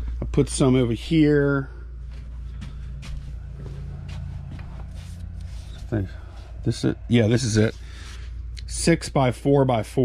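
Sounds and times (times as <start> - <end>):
low electrical hum: 0.0 - 10.0
faint knocks and rustles: 2.0 - 6.6.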